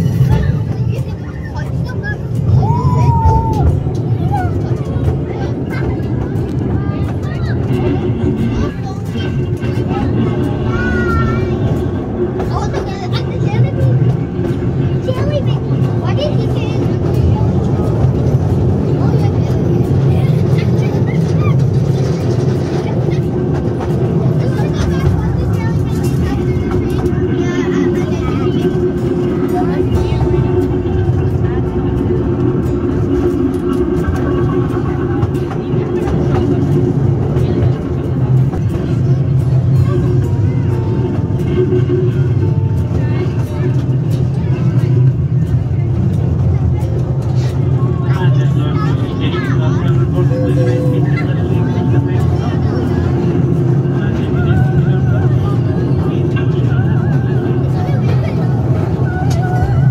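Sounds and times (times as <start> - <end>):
low engine drone: 0.0 - 59.9
voices: 0.0 - 59.9.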